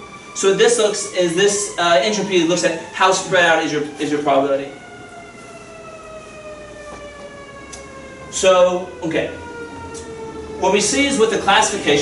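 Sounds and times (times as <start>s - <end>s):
siren wailing: 0.0s - 12.0s.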